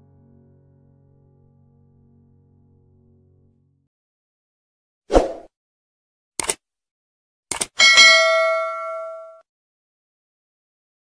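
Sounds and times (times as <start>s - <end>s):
mouse clicks: 6.4s - 6.6s, 7.5s - 7.7s
notification bell ding: 7.8s - 9.4s.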